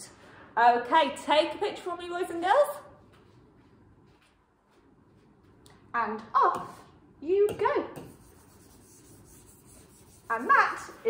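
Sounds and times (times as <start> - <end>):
hand rubbing on whiteboard screen: 8.0 - 11.0.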